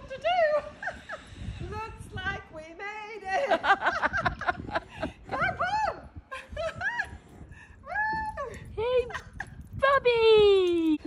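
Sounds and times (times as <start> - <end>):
people laughing: 3.4 - 5.5.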